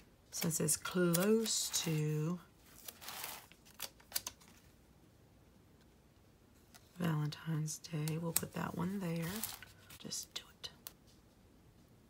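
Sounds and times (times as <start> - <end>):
paper rustling: 0.4 - 4.8, 8.8 - 10.0.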